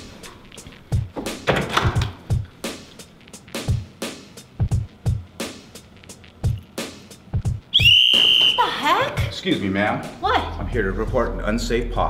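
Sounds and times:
music with steady drum beat: 0:00.0 - 0:12.0
whistle blown: 0:07.7 - 0:08.8.

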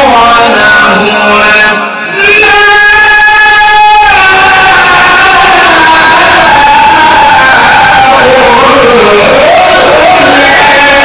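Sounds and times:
man reciting through a microphone: 0:00.0 - 0:11.0.

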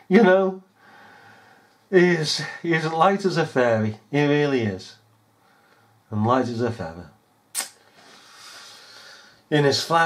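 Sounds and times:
faint steady hiss: 0:00.0 - 0:10.0
sharp click: 0:07.5 - 0:07.8.

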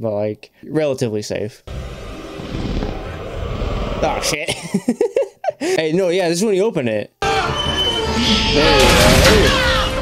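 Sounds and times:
low rumbling film score and effects: 0:01.6 - 0:05.4.

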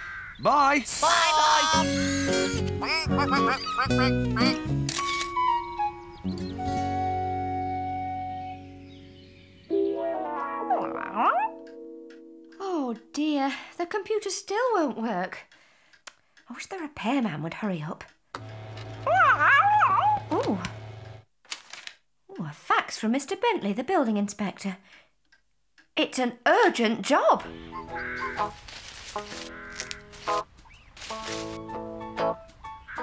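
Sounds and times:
ducks quacking: 0:00.0 - 0:04.6, 0:27.7 - 0:28.6, 0:29.2 - 0:30.8
cartoon background music: 0:01.0 - 0:09.0, 0:09.7 - 0:13.3, 0:27.4 - 0:28.6, 0:31.4 - 0:33.0
camera shutter click: 0:04.8 - 0:05.4
fax machine switch click: 0:18.4 - 0:19.1
fax machine humming: 0:18.4 - 0:21.3
cat yowling: 0:19.1 - 0:20.4.

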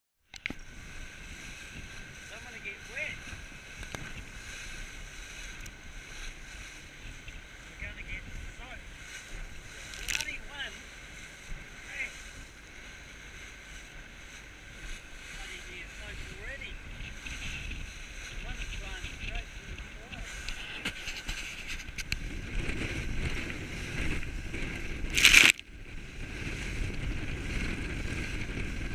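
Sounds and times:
motorboat engine: 0:00.2 - 0:28.9
hull slapping a wave: 0:00.3 - 0:28.9
rushing water and spray: 0:00.4 - 0:28.9.

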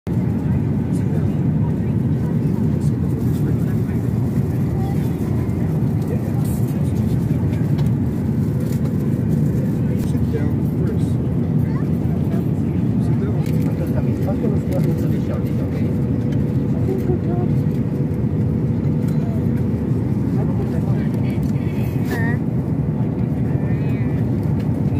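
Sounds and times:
faint voices: 0:00.1 - 0:24.9
jet engines rumbling: 0:00.1 - 0:24.9.

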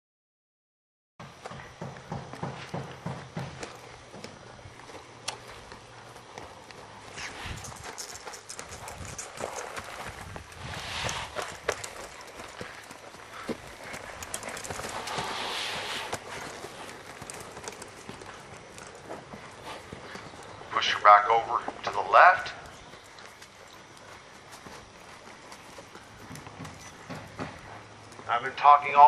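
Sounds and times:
horse hoofbeats on sand: 0:01.2 - 0:29.0.

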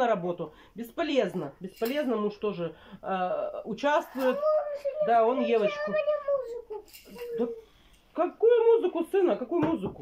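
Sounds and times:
small child vocalising: 0:04.2 - 0:07.6.

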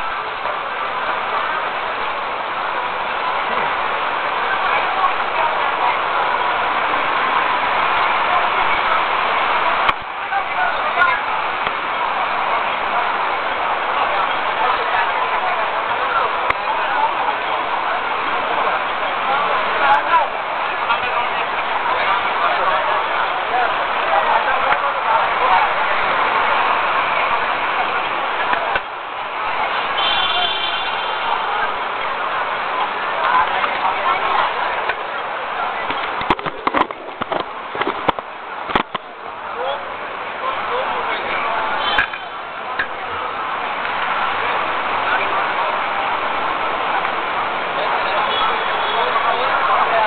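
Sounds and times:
city street traffic: 0:00.0 - 0:50.0
indistinct crowd voices: 0:00.0 - 0:50.0.

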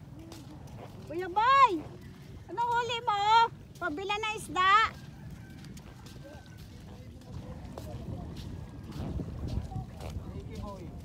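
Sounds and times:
people talking in background: 0:00.0 - 0:11.0
wind rumble on microphone: 0:04.8 - 0:11.0.

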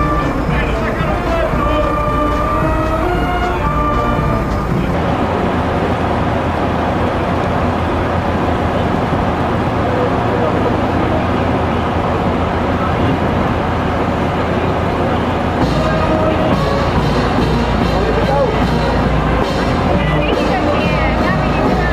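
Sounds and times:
dense traffic rumble: 0:00.0 - 0:21.9
indistinct voices: 0:00.0 - 0:21.9
music with sustained notes: 0:00.0 - 0:21.9.

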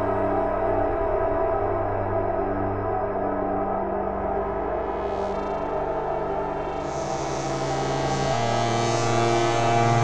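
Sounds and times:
ambient synthesizer drone: 0:00.0 - 0:10.0.

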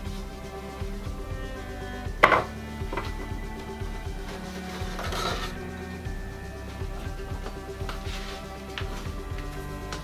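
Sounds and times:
background music: 0:00.0 - 0:10.0
wooden crates knocking: 0:02.2 - 0:03.4.

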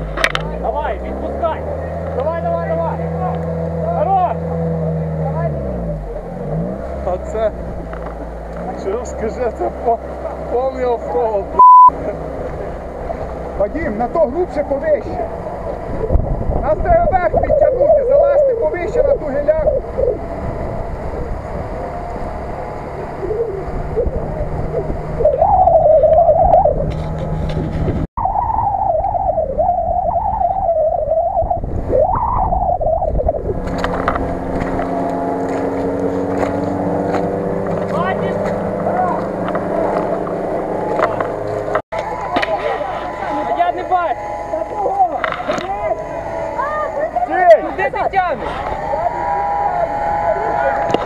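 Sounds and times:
vehicle churning through mud: 0:00.0 - 0:28.0, 0:33.4 - 0:51.0
off-road vehicle engine revving: 0:00.0 - 0:28.1, 0:29.7 - 0:51.0.

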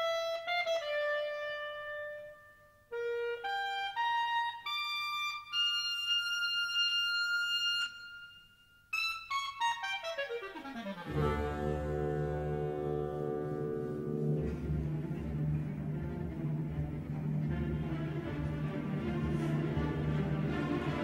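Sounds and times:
solo woodwind melody: 0:00.0 - 0:21.0.

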